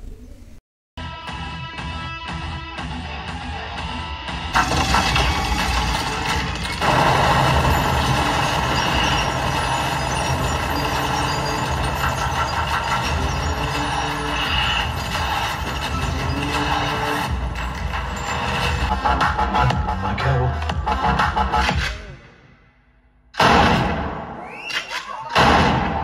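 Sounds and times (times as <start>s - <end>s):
machine-gun fire: 4.6s - 13.6s.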